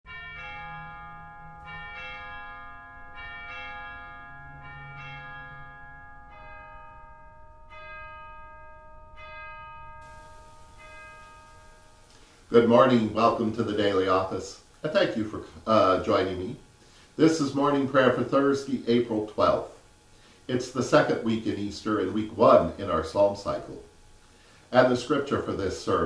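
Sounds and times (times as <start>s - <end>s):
bells ringing: 0.1s - 16.6s.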